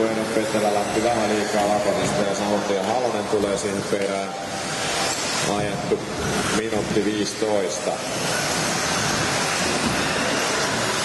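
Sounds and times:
electric toy cars racing hiss: 0.0s - 11.0s.

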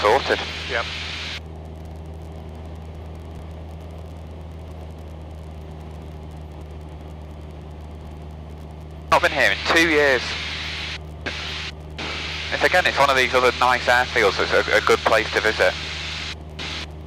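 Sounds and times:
airplane engine droning in cabin: 0.0s - 17.0s.

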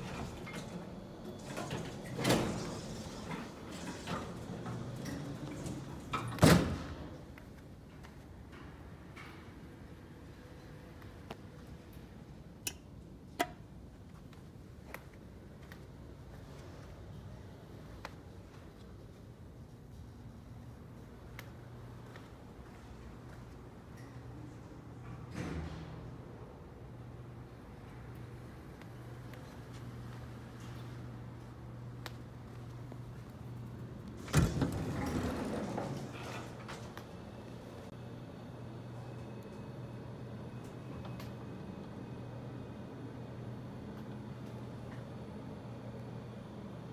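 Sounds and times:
elevator door clunk: 0.0s - 7.4s, 34.1s - 37.9s
elevator doors sliding open: 0.0s - 7.4s, 33.6s - 38.0s.

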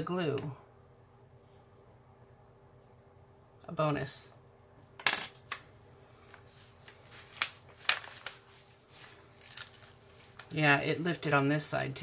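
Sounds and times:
tweezers set down on tabletop: 5.0s - 5.6s
plastic film being handled: 6.2s - 10.7s.

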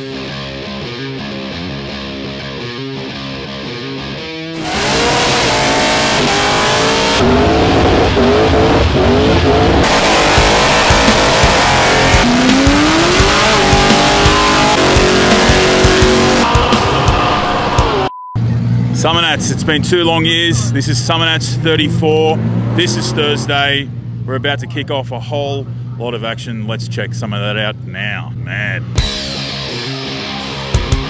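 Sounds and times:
rock music: 0.0s - 19.2s, 28.8s - 31.0s
car engines revving: 4.5s - 29.1s.

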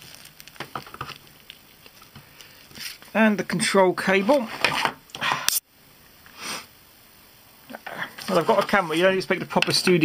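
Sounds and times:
person sniffing: 5.2s - 5.6s, 6.3s - 6.7s.

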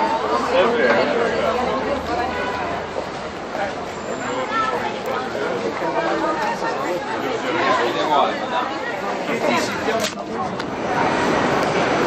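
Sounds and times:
people chatting: 0.0s - 11.7s.

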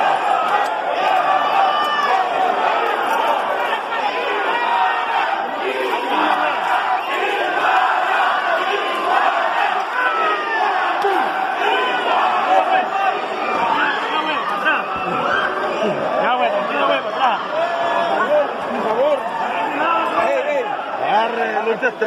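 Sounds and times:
crowd shouting and yelling: 0.0s - 22.0s.

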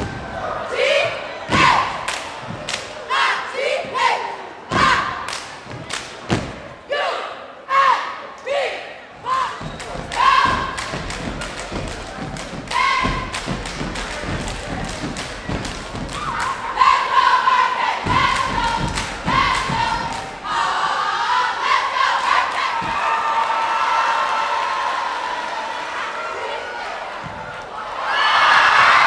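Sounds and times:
stomping and clapping on wooden floor: 1.5s - 3.0s, 4.7s - 6.7s, 9.6s - 17.0s, 18.0s - 20.5s
crowd cheering and screaming: 22.6s - 29.0s.

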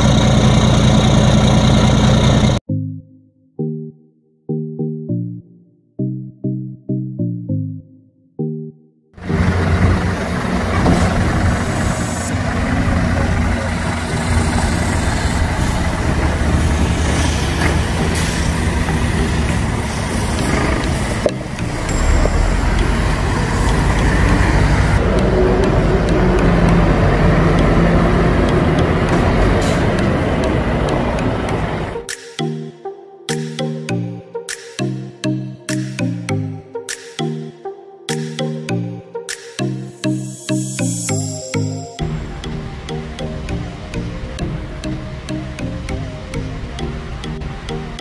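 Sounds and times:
truck diesel engine running: 0.0s - 2.6s, 9.2s - 32.1s.

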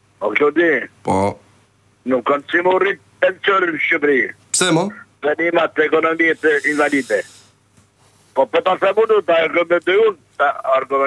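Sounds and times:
faint high hiss: 0.0s - 11.0s
person speaking: 4.3s - 7.5s.

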